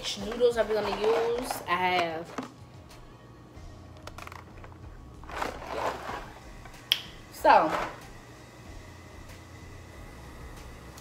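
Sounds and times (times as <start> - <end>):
dry pasta rattling in boxes: 0.0 - 2.4, 5.2 - 6.4
steady low hum: 8.0 - 11.0.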